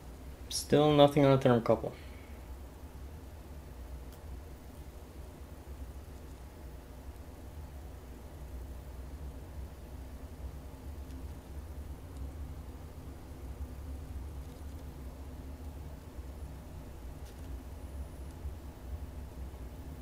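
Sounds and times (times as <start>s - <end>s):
faint hiss: 0.0s - 20.0s
steady low rumble: 0.0s - 20.0s.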